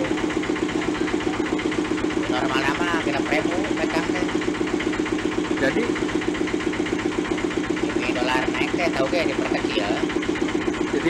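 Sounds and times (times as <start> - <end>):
machine running with fast pulse: 0.0 - 11.0.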